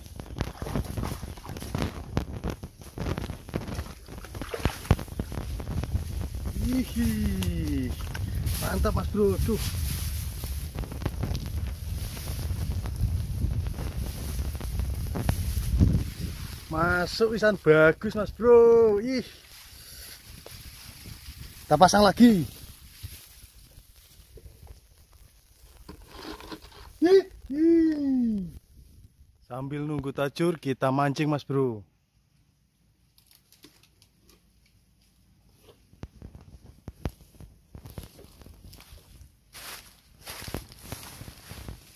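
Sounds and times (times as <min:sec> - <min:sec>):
wind buffeting microphone: 0:00.0 - 0:19.1, 0:20.2 - 0:24.8
grass and plants rustling: 0:00.0 - 0:29.2, 0:33.1 - 0:41.9.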